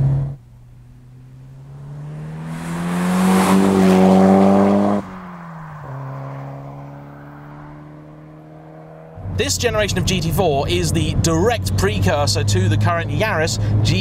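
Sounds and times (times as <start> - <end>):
car engine accelerating past: 0.2 - 9.4.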